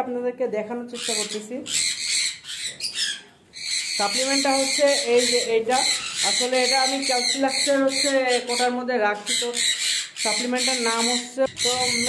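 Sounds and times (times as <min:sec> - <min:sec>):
birds squawking and chattering: 0:00.9 - 0:12.0.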